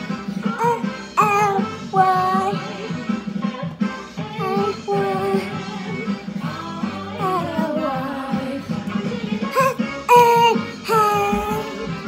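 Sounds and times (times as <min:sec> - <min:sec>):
backing music: 0:00.0 - 0:12.0
child singing: 0:00.5 - 0:03.6, 0:04.2 - 0:12.0.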